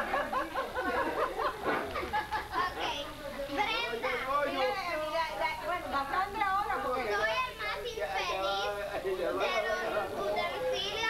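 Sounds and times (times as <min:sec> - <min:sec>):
children's voices: 0:09.4 - 0:11.0.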